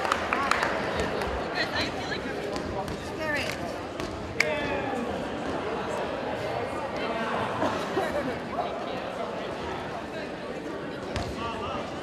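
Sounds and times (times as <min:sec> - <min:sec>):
voices chattering: 0:00.5 - 0:12.0
ball bouncing on gym floor: 0:02.5 - 0:04.3.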